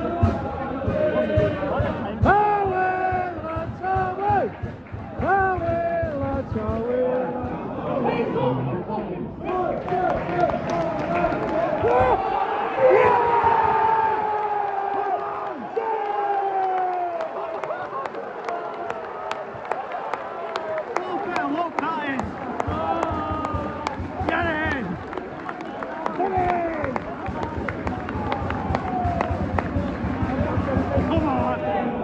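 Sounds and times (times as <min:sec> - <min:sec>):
football supporters chanting: 0:00.0 - 0:08.7, 0:09.4 - 0:31.3.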